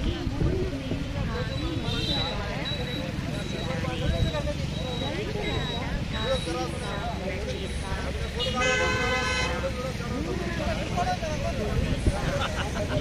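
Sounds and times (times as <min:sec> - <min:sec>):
low traffic rumble: 0:00.0 - 0:13.0
people talking: 0:00.0 - 0:13.0
vehicle horn: 0:08.4 - 0:09.7.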